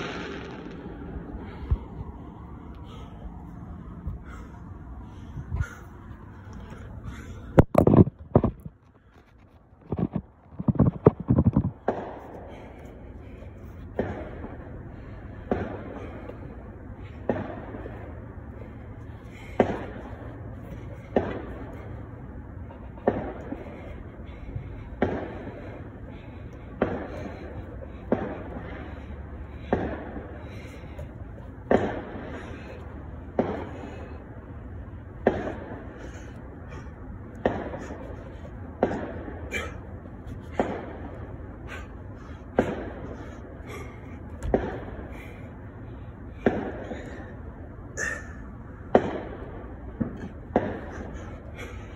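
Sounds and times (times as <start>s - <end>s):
low background hum: 0.0s - 51.9s
man breathing out hard: 35.5s - 48.7s.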